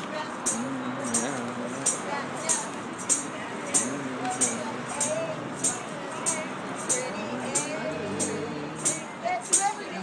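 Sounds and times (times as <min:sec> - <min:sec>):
crowd voices: 0:00.0 - 0:10.0.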